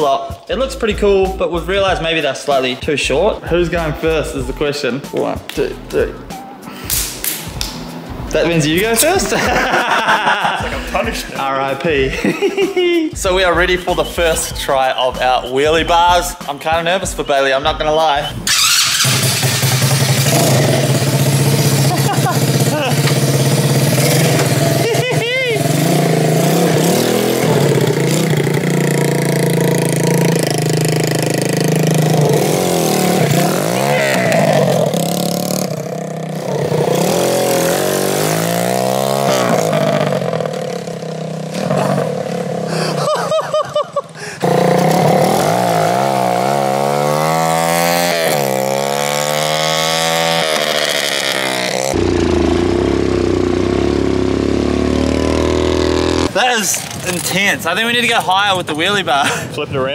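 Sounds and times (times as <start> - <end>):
kart engine revving: 18.3 - 59.4.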